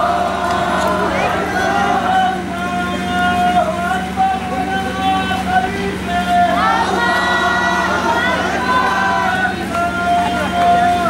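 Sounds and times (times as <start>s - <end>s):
crowd chanting slogans: 0.0s - 11.0s
steady low hum: 0.0s - 11.0s.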